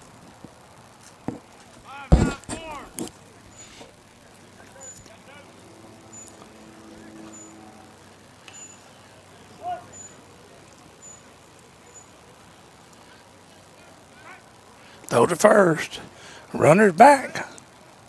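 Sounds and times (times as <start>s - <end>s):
voices shouting: 1.8s - 16.0s
faint high chirp: 4.7s - 10.3s, 10.9s - 12.2s.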